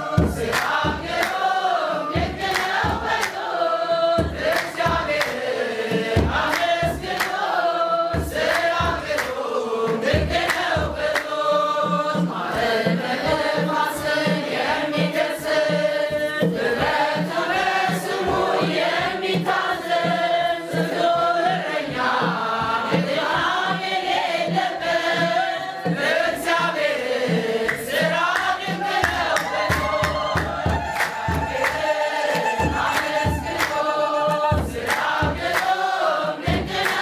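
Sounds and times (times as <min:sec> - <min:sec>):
hand claps: 0:00.0 - 0:03.6, 0:04.2 - 0:12.4, 0:25.9 - 0:37.0
mixed choir singing: 0:00.0 - 0:37.0.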